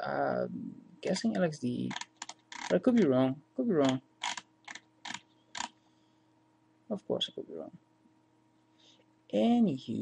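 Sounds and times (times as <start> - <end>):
mouse scroll wheel clicks: 1.9 - 2.8, 3.8 - 5.7.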